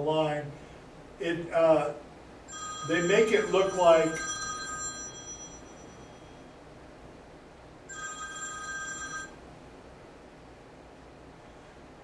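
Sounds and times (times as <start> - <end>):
telephone ringing: 2.5 - 6.5, 7.9 - 9.4.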